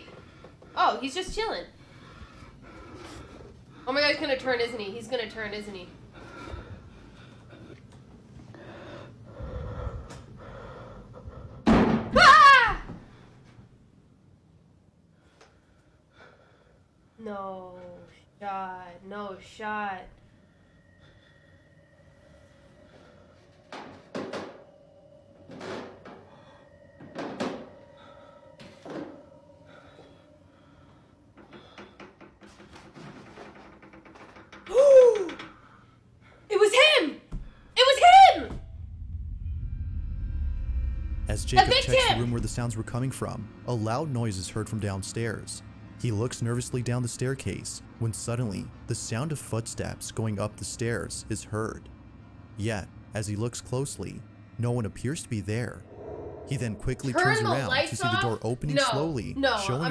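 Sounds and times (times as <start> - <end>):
woman screaming: 12.1 - 13.0, 34.7 - 35.4, 37.8 - 38.6
loud bang: 38.2 - 43.8, 55.6 - 58.2
loud gliding pitch sound: 38.4 - 46.0, 55.2 - 58.4.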